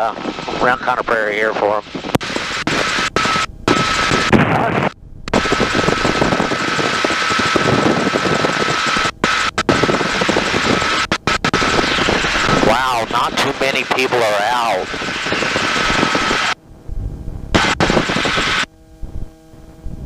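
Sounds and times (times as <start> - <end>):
helicopter engine and rotor drone: 0.0 - 18.9.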